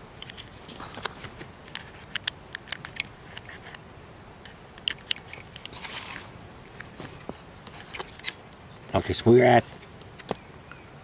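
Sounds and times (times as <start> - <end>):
brief rustle: 4.9 - 8.4.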